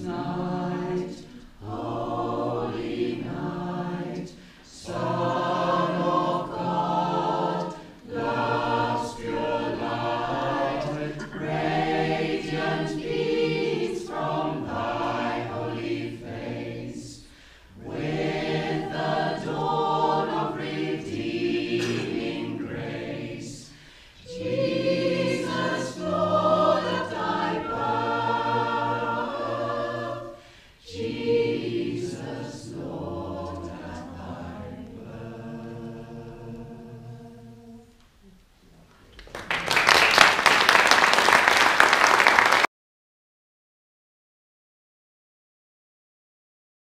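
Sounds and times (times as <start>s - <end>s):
choir singing a carol: 0.0s - 38.1s.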